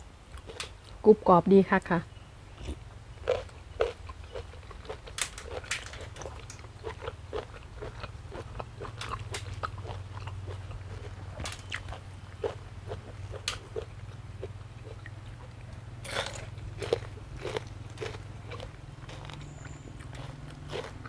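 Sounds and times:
steady low hum: 0:00.0 - 0:21.0
crunchy chewing: 0:00.3 - 0:01.0, 0:02.5 - 0:21.0.

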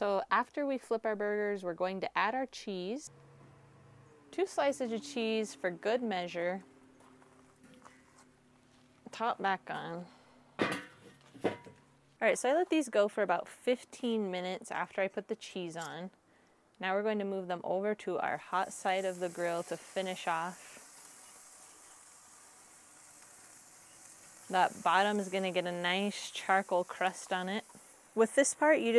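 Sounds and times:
burgers sizzling on a grill: 0:18.3 - 0:28.9.

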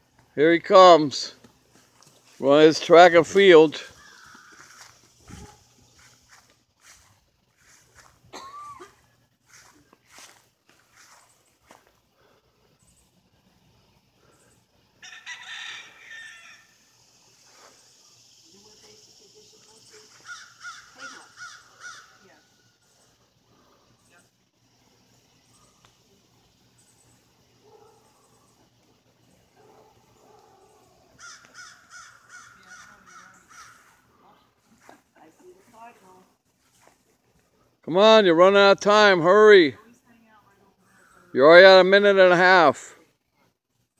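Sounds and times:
rooster crowing: 0:15.0 - 0:16.9.

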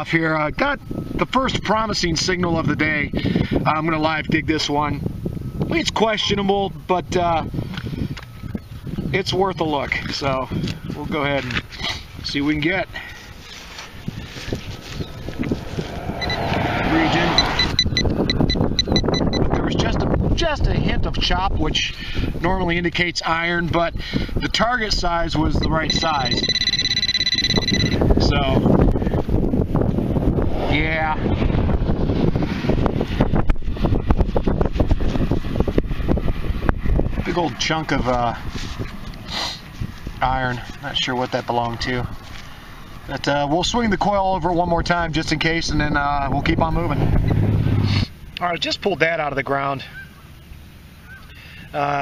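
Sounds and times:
wind buffeting microphone: 0:00.0 - 0:48.8
crackles scrapes and knocks: 0:13.1 - 0:16.0, 0:38.1 - 0:42.5
metal detector rapid beeping: 0:16.2 - 0:19.5, 0:25.7 - 0:28.3.

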